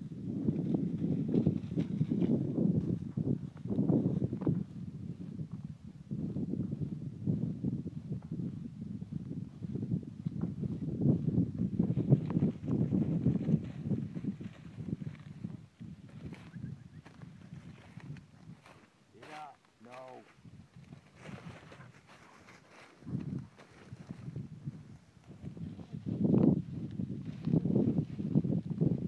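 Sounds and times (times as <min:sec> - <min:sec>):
wind on microphone: 0:00.0 - 0:29.0
dry stalks rustling and crunching: 0:12.1 - 0:24.5
man calling out: 0:19.2 - 0:20.3.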